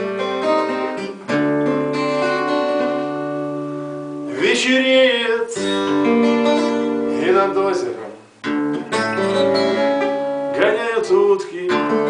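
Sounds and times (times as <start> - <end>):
twelve-string acoustic guitar strumming: 0.0 - 12.0
person singing: 4.3 - 6.2, 10.5 - 12.0.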